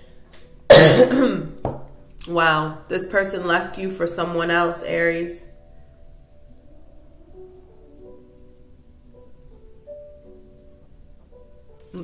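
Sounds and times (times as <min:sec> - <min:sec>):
woman coughing: 0:00.7 - 0:01.6.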